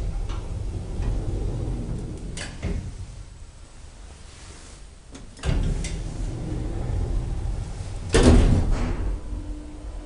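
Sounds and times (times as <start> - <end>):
elevator low rumble: 0.0 - 10.0.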